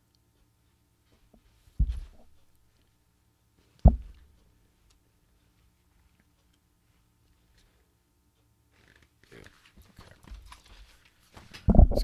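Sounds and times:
book handling knocks and rustles: 0:01.8 - 0:02.3.

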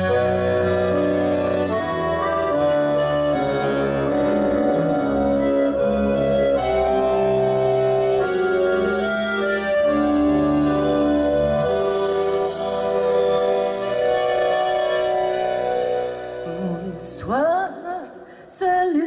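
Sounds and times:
accordion playing slow melody: 0:00.0 - 0:17.2.

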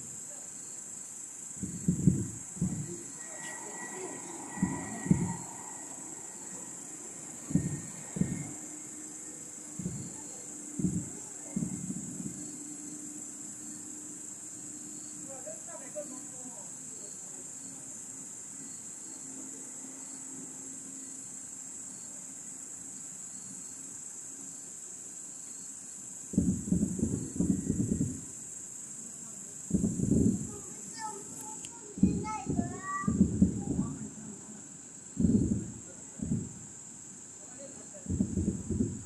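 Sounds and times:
crickets chirring: 0:00.0 - 0:39.0
distant fireworks bursting: 0:01.6 - 0:09.0, 0:09.7 - 0:12.6.

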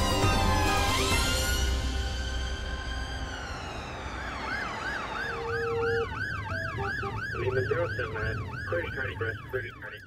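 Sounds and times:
ambulance siren yelping: 0:00.1 - 0:01.5, 0:02.6 - 0:10.0
lower falling siren tone: 0:00.4 - 0:10.0.

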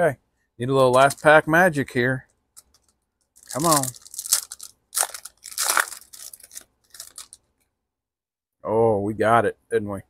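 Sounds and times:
foil wrapper tearing and crinkling: 0:03.4 - 0:07.4.

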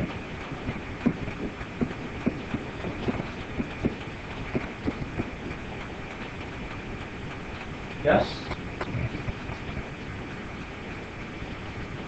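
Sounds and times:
low hum: 0:00.0 - 0:12.0
room hiss: 0:00.0 - 0:12.0.

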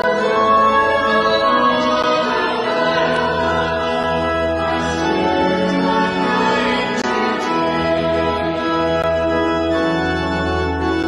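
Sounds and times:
keyboard chords: 0:00.0 - 0:11.0
voices singing a hymn: 0:00.0 - 0:11.0.

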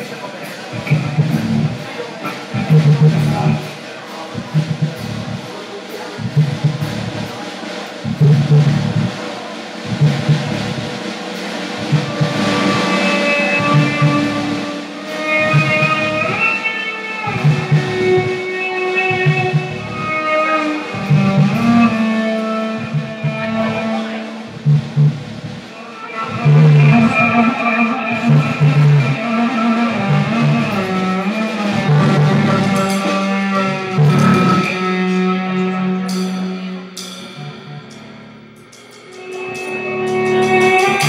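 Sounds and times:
drum kit: 0:00.0 - 0:41.0
electric cello: 0:00.7 - 0:05.4, 0:11.6 - 0:38.1, 0:39.1 - 0:41.0.

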